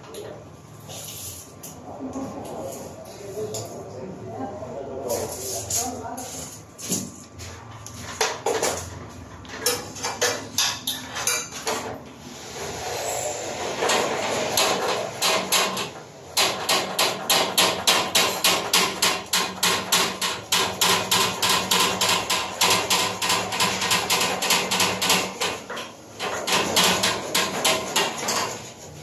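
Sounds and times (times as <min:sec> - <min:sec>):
hammering: 0:13.8 - 0:28.6.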